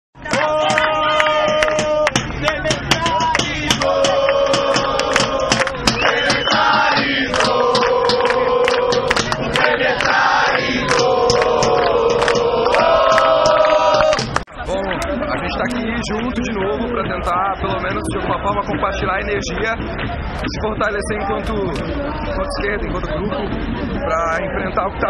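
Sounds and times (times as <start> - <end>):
sharp percussive hits: 0.2 - 14.4
crowd chanting and singing: 0.2 - 25.0.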